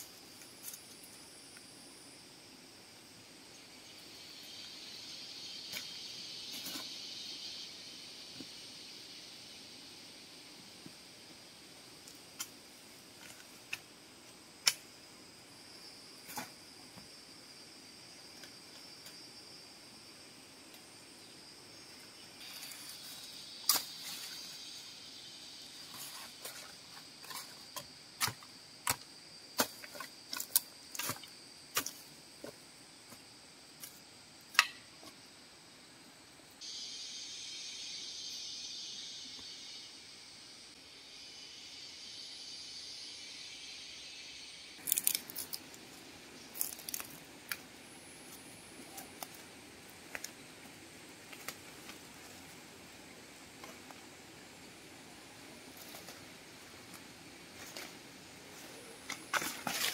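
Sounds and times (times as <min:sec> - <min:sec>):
high insect buzz: 0:00.0 - 0:59.9
hiss: 0:03.8 - 0:15.0, 0:22.3 - 0:27.6, 0:36.6 - 0:59.9.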